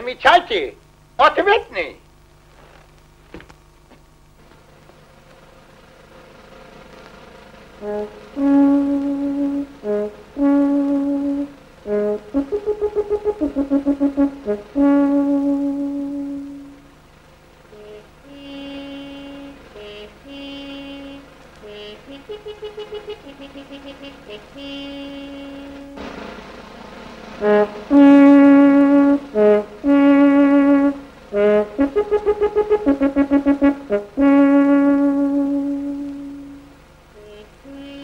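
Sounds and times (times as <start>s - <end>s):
brass music: 7.1s - 38.0s.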